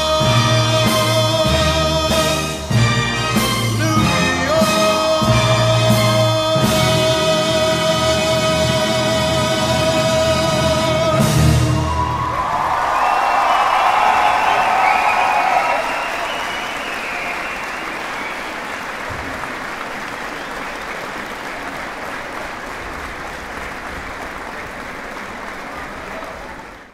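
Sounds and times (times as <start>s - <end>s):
audience applause: 11.7s - 26.9s.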